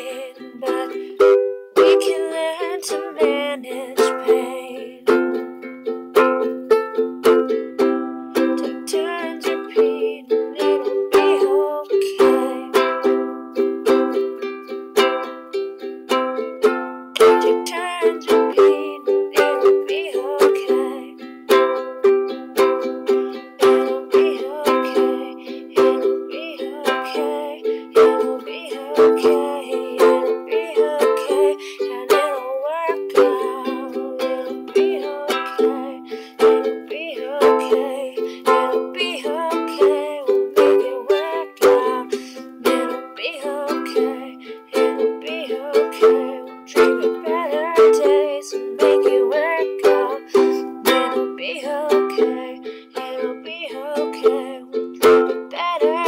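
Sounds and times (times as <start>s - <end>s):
ukulele strumming: 0.0s - 56.0s.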